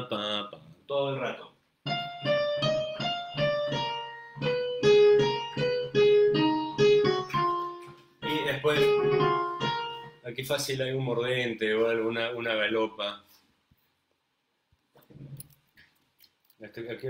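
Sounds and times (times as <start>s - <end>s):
computer piano melody: 1.8s - 10.7s.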